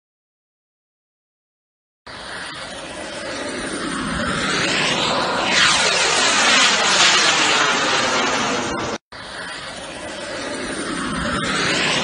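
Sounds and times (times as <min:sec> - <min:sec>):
fighter jet engines roaring: 0:02.1 - 0:12.0.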